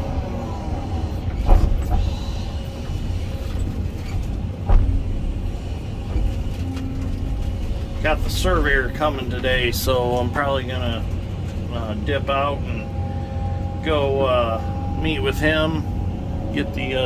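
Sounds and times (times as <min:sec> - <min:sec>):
excavator diesel engine running: 0:00.0 - 0:17.0.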